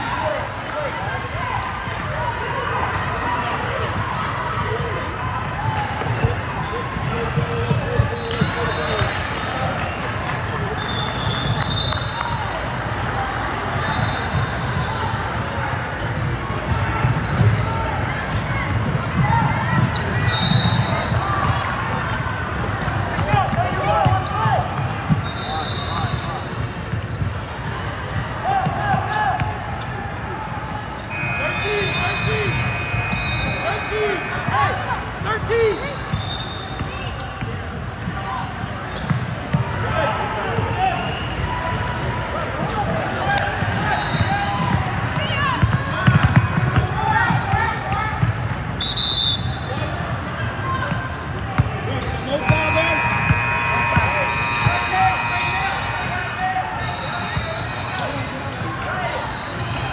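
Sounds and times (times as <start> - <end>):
ball bouncing on hardwood court: 45.6 - 47.4.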